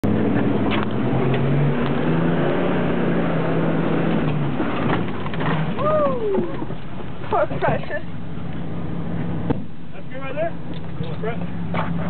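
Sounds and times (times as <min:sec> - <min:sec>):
car engine running under load: 0:00.0 - 0:12.0
person saying ooh: 0:05.8 - 0:06.6.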